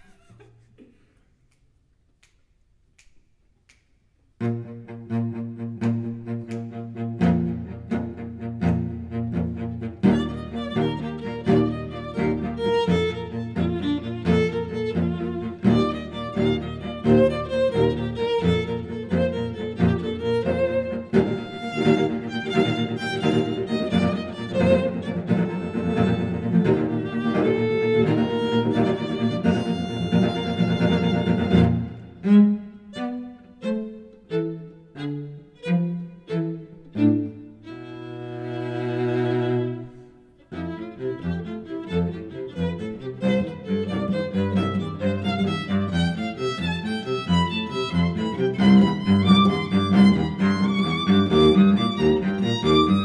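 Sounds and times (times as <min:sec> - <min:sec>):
cello: 0:04.4 - 0:53.0
violin: 0:04.4 - 0:53.0.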